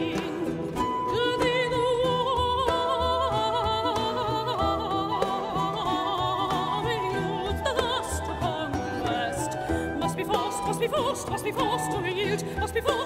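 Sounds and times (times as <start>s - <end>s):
lutes and bowed strings: 0.0s - 13.0s
soprano singing with vibrato: 0.0s - 13.0s.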